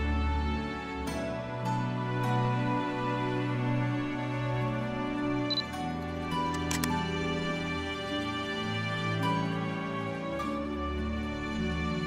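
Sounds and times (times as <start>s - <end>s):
soft background music: 0.0s - 12.0s
camera shutter clicking: 6.5s - 7.0s.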